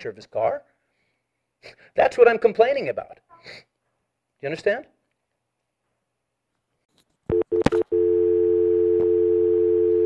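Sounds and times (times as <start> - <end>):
telephone dial tone: 7.3 - 10.0.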